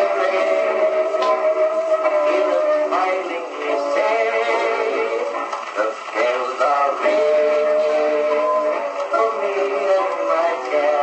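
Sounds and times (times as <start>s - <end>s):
old phonograph record song with band: 0.0s - 11.0s.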